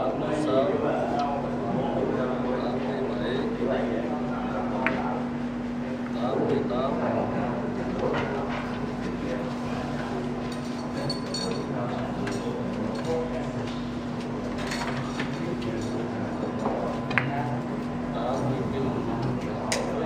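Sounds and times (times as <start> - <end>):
murmur of voices: 0.0 - 20.0
steady low hum: 0.0 - 20.0.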